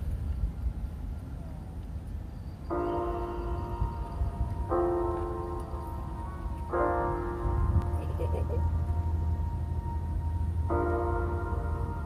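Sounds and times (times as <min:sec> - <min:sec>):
wind rumble on microphone: 0:00.0 - 0:12.0
bell-like music chord: 0:02.7 - 0:12.0.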